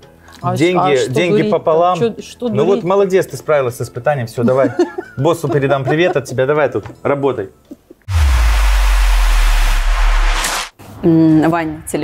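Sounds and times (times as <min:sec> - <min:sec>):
deep bass rumble: 0:08.1 - 0:10.7
whoosh rush of noise: 0:08.1 - 0:10.7.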